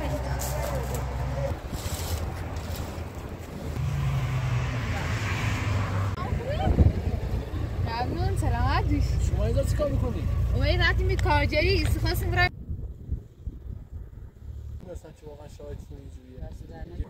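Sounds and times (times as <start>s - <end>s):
people talking: 0.0s - 1.5s, 6.2s - 12.5s, 14.8s - 17.0s
car engine idling: 5.9s - 12.5s.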